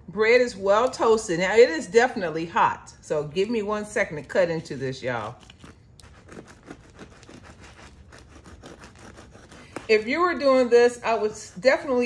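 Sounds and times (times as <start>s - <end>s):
bread knife sawing crunchy crust: 4.2s - 12.0s.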